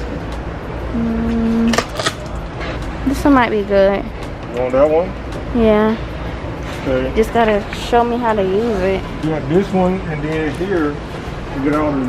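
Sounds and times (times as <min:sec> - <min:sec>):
woman humming: 0:00.9 - 0:01.8.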